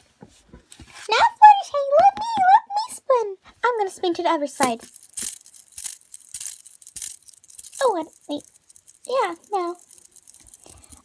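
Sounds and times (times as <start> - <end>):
fidget spinner clicking and rattling: 4.6 - 11.0.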